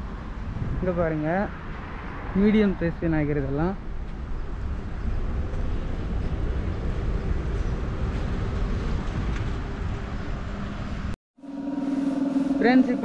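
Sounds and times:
low rumble: 0:11.4 - 0:13.0.

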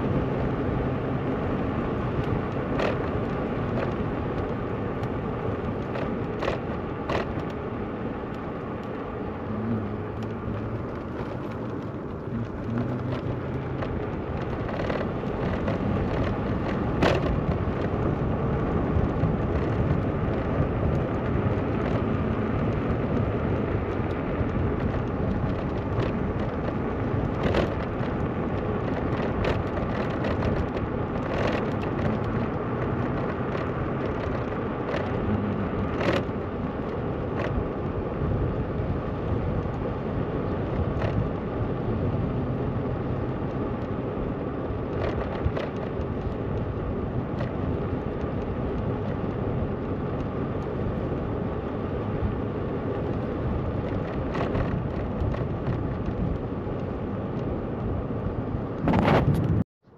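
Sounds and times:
moped riding rumble: 0:00.0 - 0:59.9.

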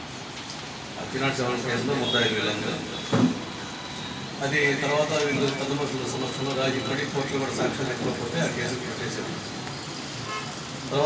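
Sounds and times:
steady background noise: 0:00.0 - 0:11.0
man speaking: 0:01.0 - 0:03.0
vehicle horn toot: 0:02.0 - 0:03.4, 0:10.2 - 0:10.6.

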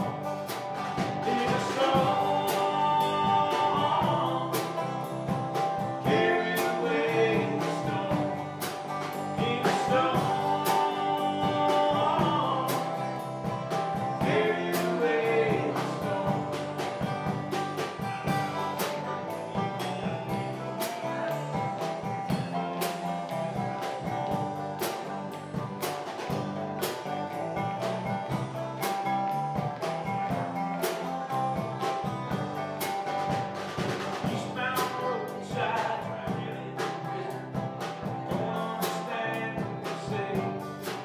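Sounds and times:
acoustic guitars strummed: 0:00.0 - 0:41.0
banjo: 0:00.0 - 0:41.0
drum kit beat: 0:00.0 - 0:41.0
person singing: 0:01.0 - 0:17.4, 0:34.1 - 0:41.0.

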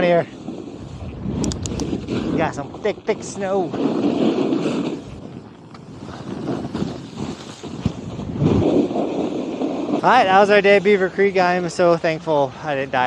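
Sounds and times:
snowboard carving through snow: 0:00.0 - 0:13.0
wind buffeting microphone: 0:00.0 - 0:13.0.

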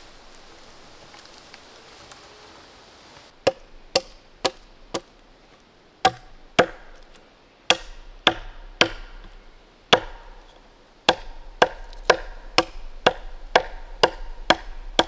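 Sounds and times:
axe chopping into wood: 0:03.4 - 0:05.1, 0:06.0 - 0:15.0.

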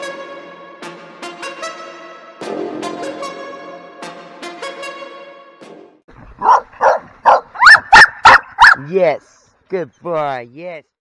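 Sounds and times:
puppies barking and yipping: 0:06.2 - 0:08.9.

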